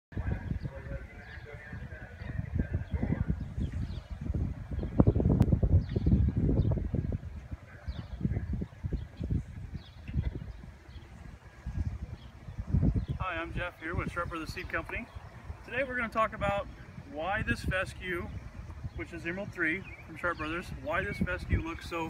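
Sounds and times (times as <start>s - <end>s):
wind buffeting microphone: 0.1s - 22.0s.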